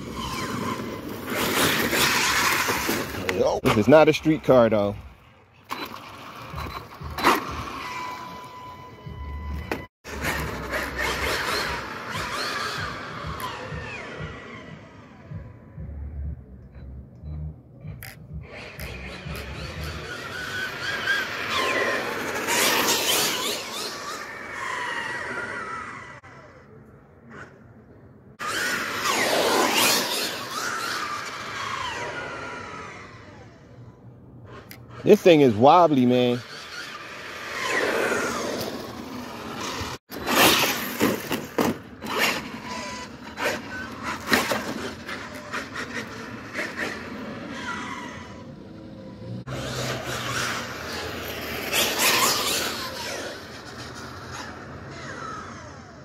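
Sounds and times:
rc car motor whine: 0.0s - 3.4s, 5.7s - 15.8s, 18.4s - 27.7s, 28.4s - 56.0s
tyre noise on asphalt: 0.0s - 16.0s, 17.7s - 56.0s.

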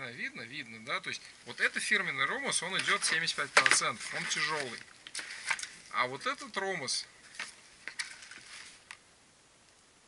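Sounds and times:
faint rustle: 0.8s - 9.9s.

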